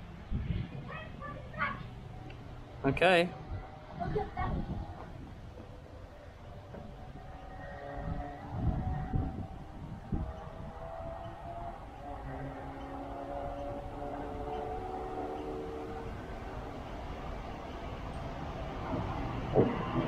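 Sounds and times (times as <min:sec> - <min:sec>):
electric train rumble: 0:00.0 - 0:20.0
low bumps: 0:00.0 - 0:20.0.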